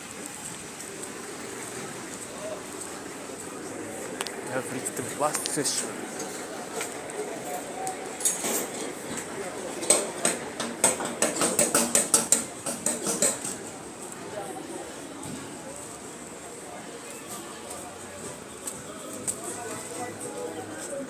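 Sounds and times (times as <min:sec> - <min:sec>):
street noise: 0:00.0 - 0:21.0
voices: 0:00.0 - 0:21.0.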